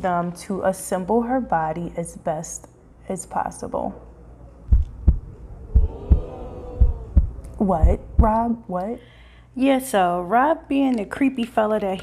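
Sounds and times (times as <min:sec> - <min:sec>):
heartbeat thumps: 0:04.7 - 0:08.5.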